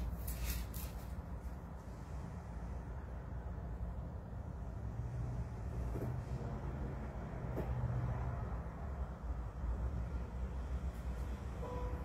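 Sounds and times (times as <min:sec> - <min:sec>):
paper pages turning: 0:00.0 - 0:01.2
low steady hum: 0:00.0 - 0:12.0.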